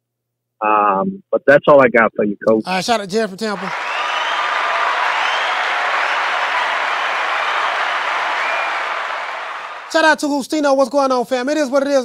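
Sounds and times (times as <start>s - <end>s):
crowd applause and cheering: 3.4s - 10.2s.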